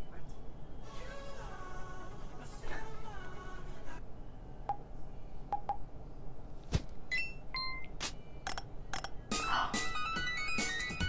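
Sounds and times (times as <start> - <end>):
short electronic beeping tones: 7.1 - 7.9
sharp clicks: 8.4 - 9.2.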